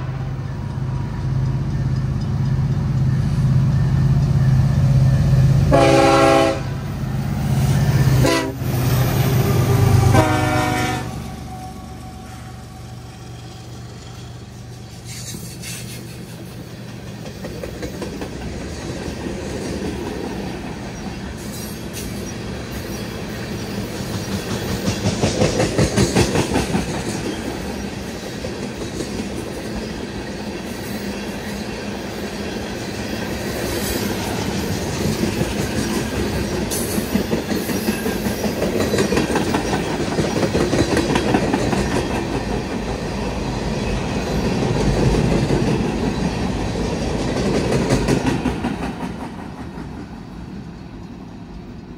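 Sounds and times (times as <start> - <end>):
train cars clanking: 0.0 - 51.9
freight train wheels clattering: 12.4 - 51.9.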